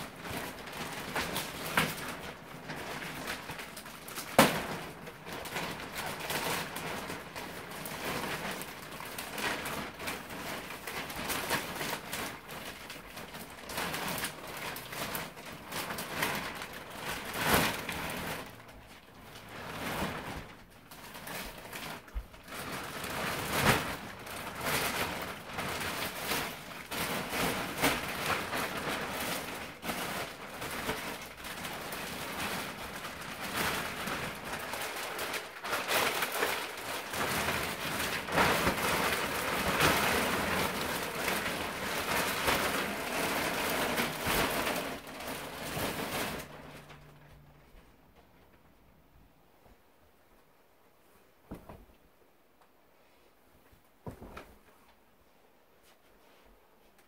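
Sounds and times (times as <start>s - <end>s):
plastic wrap crinkling: 0.0s - 49.8s.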